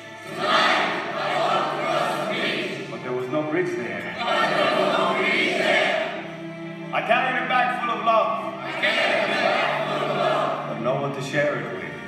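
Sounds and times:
choir singing film music in a hall: 0.0 - 12.0.

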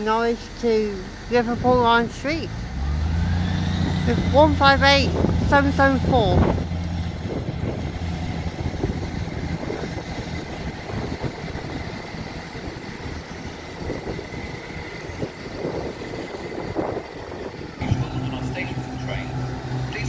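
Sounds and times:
diesel train pulling away: 0.0 - 20.0.

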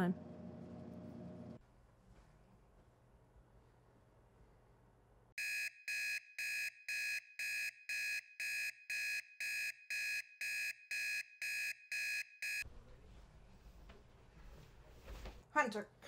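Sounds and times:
smartphone alarm beeping: 5.4 - 12.6.

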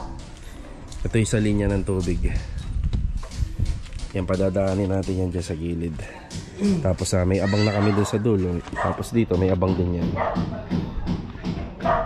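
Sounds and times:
dog barking: 7.6 - 9.1, 10.2 - 10.5, 11.8 - 12.0.

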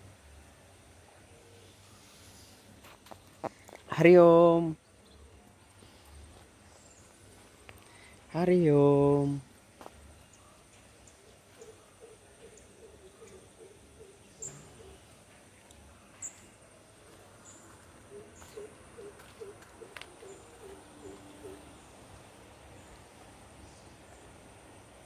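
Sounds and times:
bird hooting: 11.2 - 15.2, 18.0 - 22.2.

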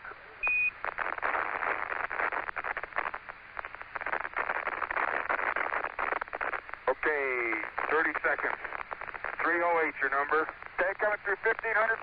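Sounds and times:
radio static and hiss: 0.0 - 12.0
rapid radio clicks: 0.8 - 12.0.

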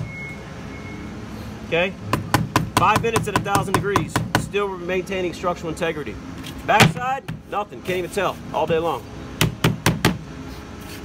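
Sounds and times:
hand knocking on foam panel: 2.1 - 4.5.

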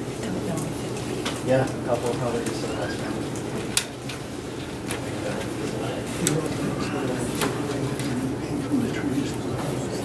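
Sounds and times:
low murmured voices: 0.0 - 10.0.

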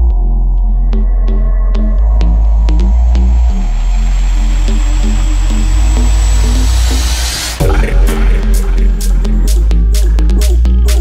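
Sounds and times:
bass house music: 0.0 - 11.0.

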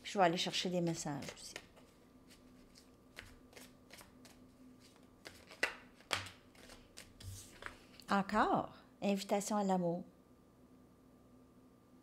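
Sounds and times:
cards being shuffled: 1.1 - 7.9.

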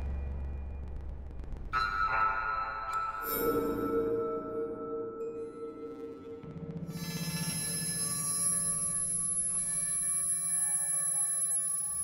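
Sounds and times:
sustained ringing synth tones: 7.0 - 12.0.

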